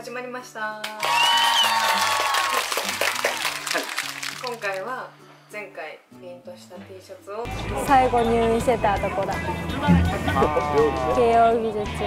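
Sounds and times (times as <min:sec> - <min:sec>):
light background music: 0:00.0 - 0:12.0
crowd applause and cheering: 0:01.0 - 0:04.6.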